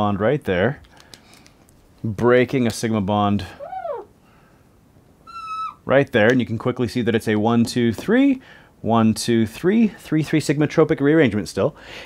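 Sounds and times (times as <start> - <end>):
marker squeaking on whiteboard: 3.6 - 4.1, 5.3 - 5.8.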